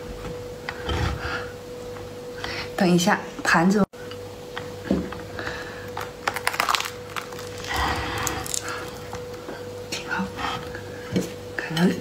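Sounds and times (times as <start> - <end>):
spiky shell cracking apart: 6.0 - 9.2.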